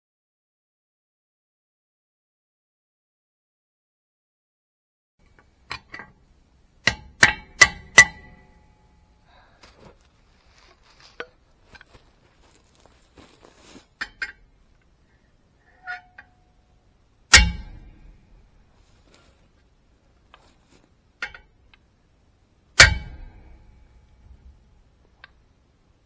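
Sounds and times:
hammer clanging on steel: 6.8 - 9.1, 17.3 - 18.4, 22.8 - 24.4.

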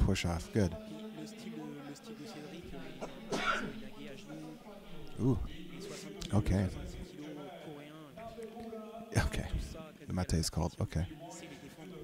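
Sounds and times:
faint background voices: 0.0 - 12.0
man clearing his throat: 3.0 - 3.8.

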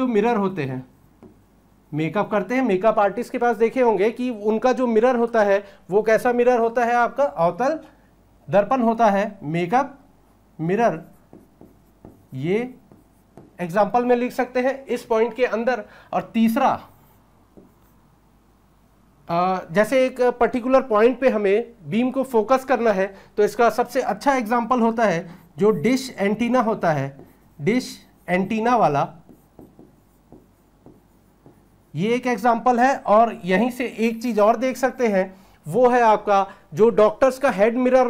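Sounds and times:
marker pen writing on whiteboard: 0.0 - 5.3, 10.3 - 18.2, 22.1 - 35.2.

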